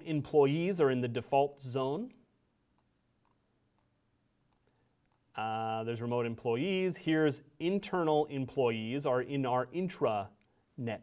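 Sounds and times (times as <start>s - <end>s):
person speaking: 0.0s - 3.0s, 4.6s - 11.0s
computer mouse clicks: 2.8s - 5.3s.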